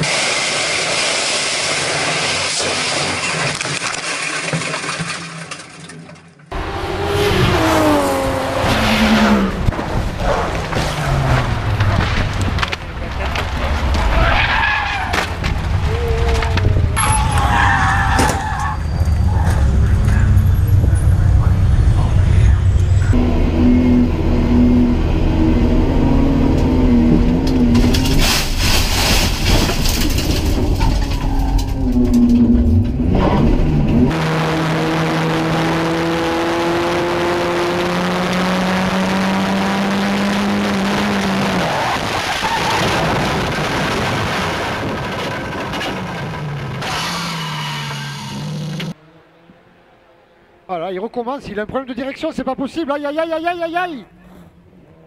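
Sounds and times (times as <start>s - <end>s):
single racing car engine: 6.5s - 12.0s, 32.1s - 41.8s, 45.9s - 50.7s
pack of racing cars rumbling: 6.5s - 52.2s.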